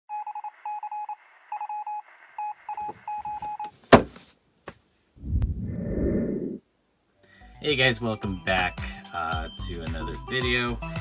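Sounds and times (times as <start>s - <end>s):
low rumbling noise: 5.2s - 6.7s.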